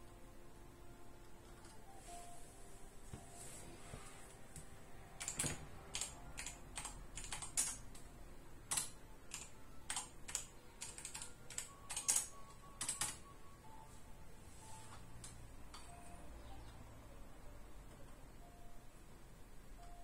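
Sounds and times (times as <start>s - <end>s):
typing on computer keyboard: 5.2s - 8.1s, 8.7s - 13.3s.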